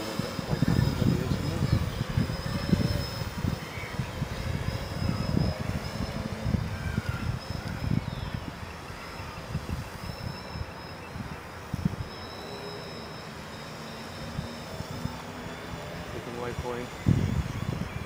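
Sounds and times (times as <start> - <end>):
drone propellers buzzing: 0.0 - 18.0
wind buffeting microphone: 0.0 - 18.0.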